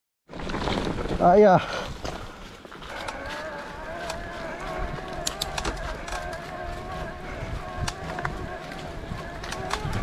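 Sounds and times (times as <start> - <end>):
tyres clicking on gravel: 0.3 - 10.0
electric bike motor whining: 3.0 - 10.0.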